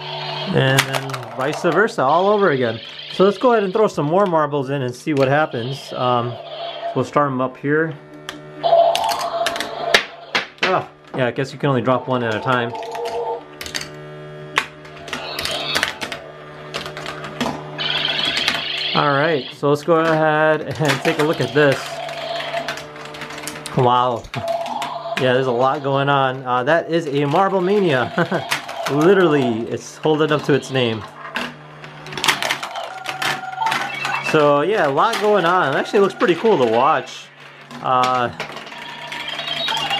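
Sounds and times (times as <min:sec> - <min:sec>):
space sound effects: 0:00.0 - 0:07.4, 0:08.6 - 0:13.5, 0:14.9 - 0:22.7, 0:32.3 - 0:37.7
steady electronic hum: 0:00.0 - 0:39.9
warbling sound effect: 0:08.6 - 0:10.6, 0:11.5 - 0:13.4, 0:15.0 - 0:16.4, 0:17.8 - 0:19.6
marbles clattering on plastic tracks: 0:20.0 - 0:26.0, 0:27.0 - 0:31.6.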